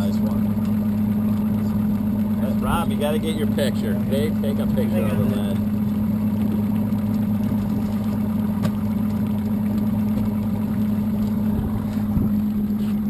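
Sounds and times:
outboard motor idling: 0.0 - 13.0.

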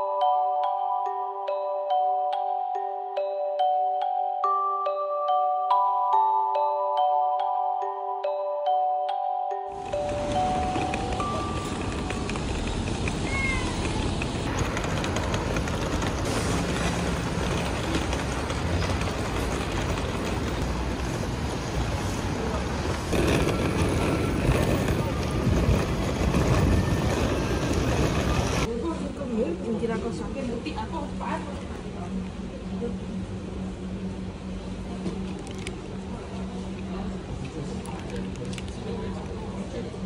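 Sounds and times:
suitcase wheels rumbling on paving: 9.8 - 28.7.

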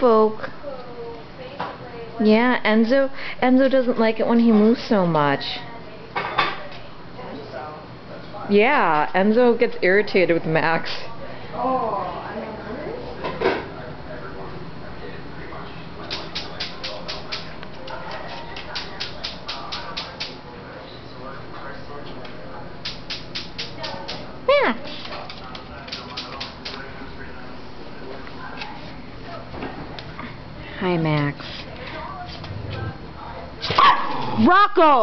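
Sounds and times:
small dog barking: 33.8 - 34.3.

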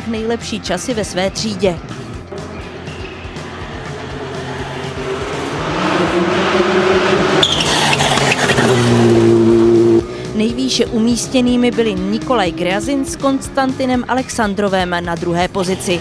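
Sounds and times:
rally car engine driven hard: 1.8 - 16.0.

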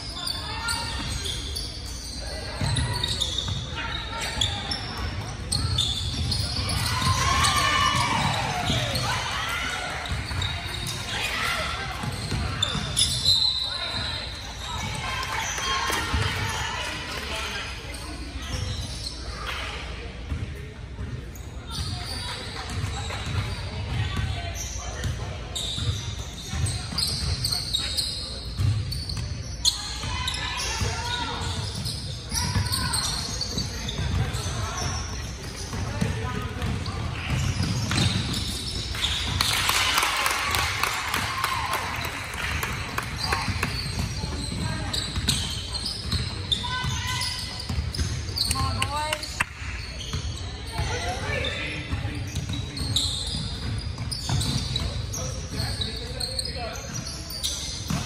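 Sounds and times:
people shouting in a gym: 0.0 - 20.1, 29.0 - 49.2, 49.9 - 53.5.

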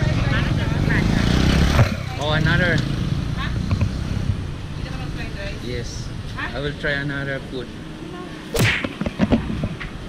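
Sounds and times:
people talking: 0.0 - 1.4
vehicle engine passing: 0.0 - 8.6.

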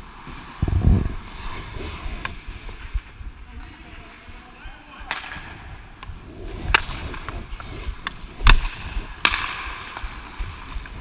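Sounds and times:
hockey sticks and puck cracking: 4.8 - 11.0
skate blades hissing on ice: 6.1 - 11.0.

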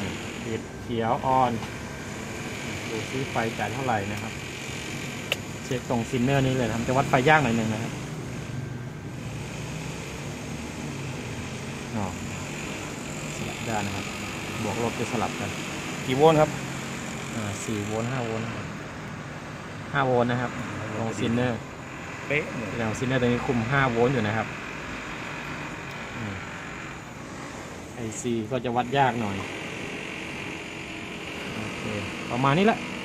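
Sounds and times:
motor droning: 0.0 - 33.0.

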